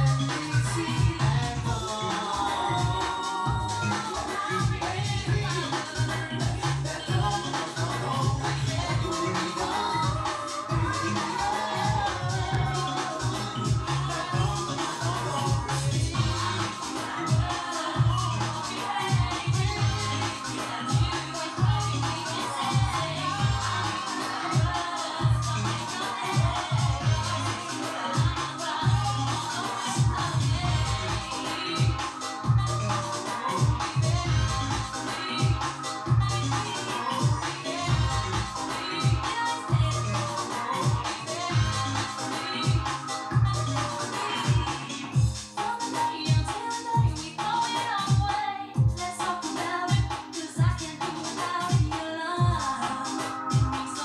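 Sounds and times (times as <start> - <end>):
music with steady beat and strong bass: 0.0 - 54.0.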